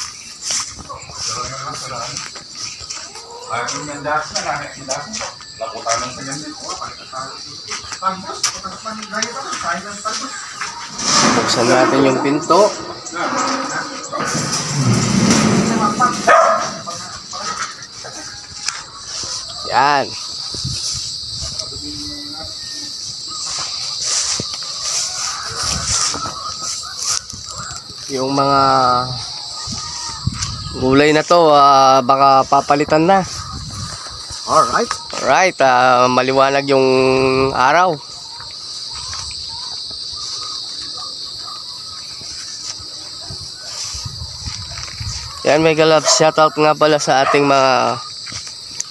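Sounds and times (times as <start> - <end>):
crickets chirping: 0.0 - 48.9
sheet-metal door scraping rattle: 10.9 - 17.0.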